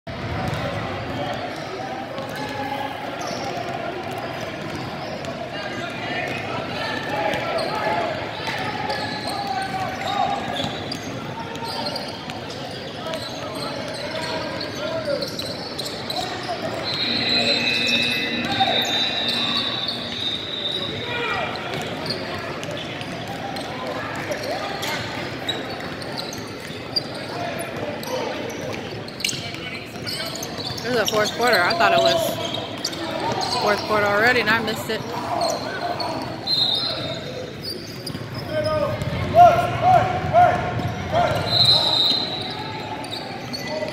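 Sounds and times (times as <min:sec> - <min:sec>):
voices echoing in hall: 0:00.2 - 0:43.9.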